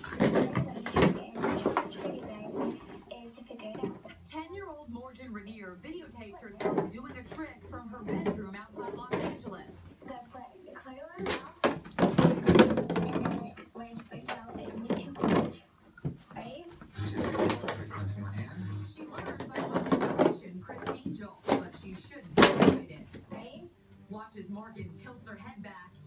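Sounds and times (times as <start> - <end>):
plastic jug crackling and knocking: 0.0 - 3.0, 6.4 - 9.8, 11.2 - 16.3, 18.8 - 23.5.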